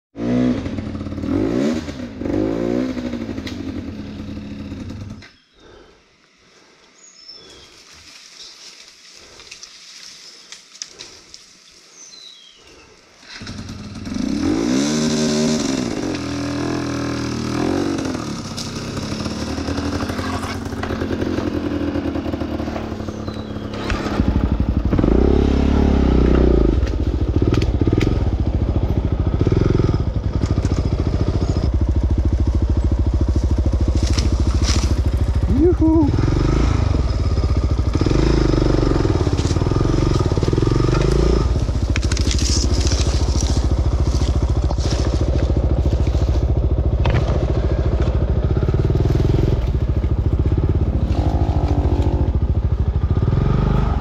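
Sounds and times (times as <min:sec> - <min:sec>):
dirt bike engine revving: 0:00.2 - 0:05.8, 0:13.2 - 0:54.0.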